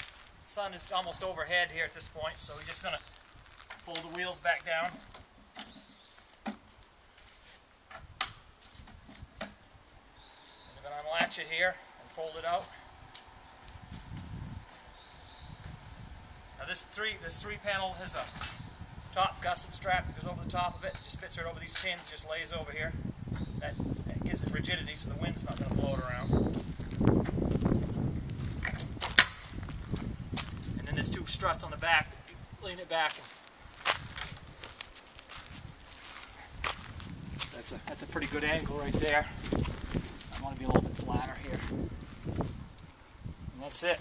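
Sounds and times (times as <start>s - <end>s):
wind rumble on microphone: 12.7s - 32.7s, 33.6s - 44.0s.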